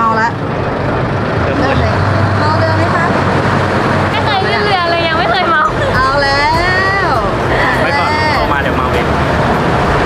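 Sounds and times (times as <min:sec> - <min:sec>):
low engine rumble: 0:00.0 - 0:10.0
people talking: 0:01.5 - 0:03.2, 0:04.1 - 0:09.1.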